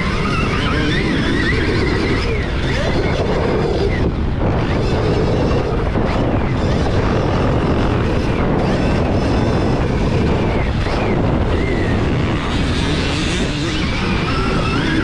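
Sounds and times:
electric motor whine: 0.0s - 15.0s
motorbike running noise: 0.0s - 15.0s
wind rumble on microphone: 0.0s - 15.0s.

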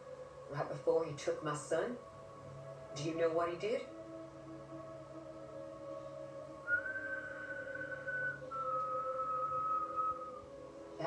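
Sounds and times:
sustained musical drone: 0.0s - 11.0s
person whistling long notes: 6.6s - 10.6s.

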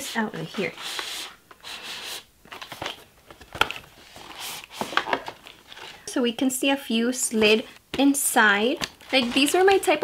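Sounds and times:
cardboard rustling: 2.0s - 6.0s, 8.8s - 10.0s.

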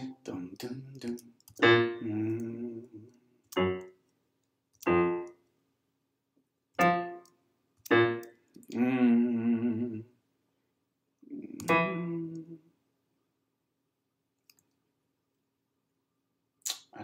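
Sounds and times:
electric piano chords: 1.5s - 2.5s, 3.5s - 4.0s, 4.8s - 5.4s, 6.8s - 8.3s, 11.6s - 12.6s.

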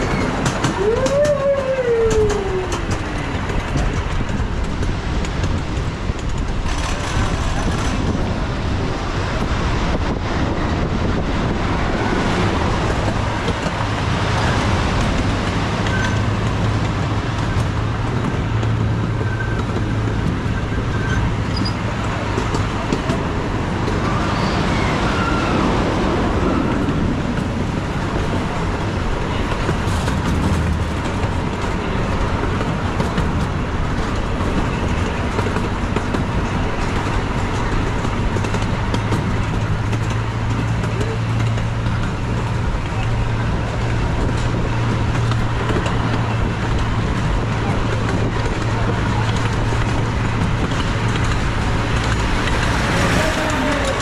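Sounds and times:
wheels rumbling on rail: 0.0s - 54.0s.

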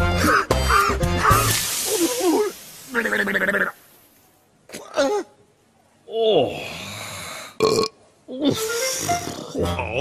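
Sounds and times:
background music: 0.0s - 2.2s, 8.4s - 10.0s
throaty vocal noises: 6.1s - 10.0s
cartoon character burping: 7.6s - 10.0s.

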